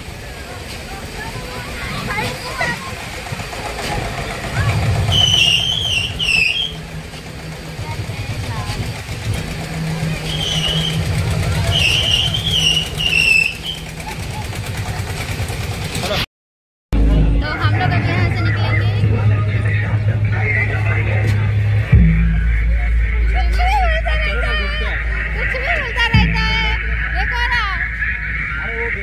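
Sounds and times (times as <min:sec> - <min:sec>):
fairground ride machinery hum: 0:00.0 - 0:16.2, 0:17.0 - 0:29.0
high wavering shrill sound: 0:04.6 - 0:07.8, 0:09.7 - 0:14.0.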